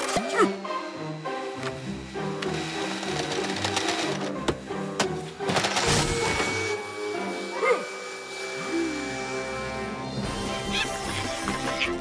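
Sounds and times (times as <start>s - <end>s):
background music: 0.0s - 12.0s
fast mechanical rattle: 2.8s - 4.3s.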